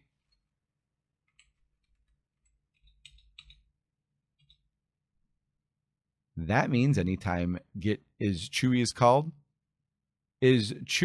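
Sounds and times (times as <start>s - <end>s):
keyboard keystrokes: 2.7s - 3.6s.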